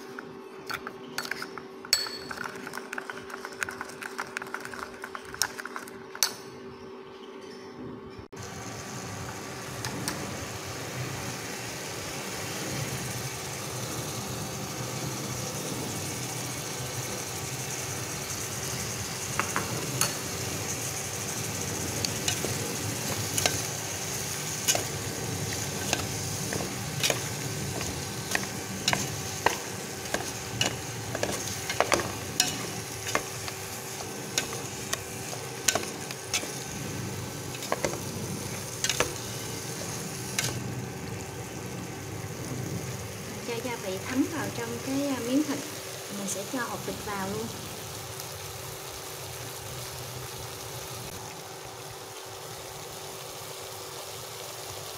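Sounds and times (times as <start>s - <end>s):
meat sizzling in oil: 8.4s - 54.9s.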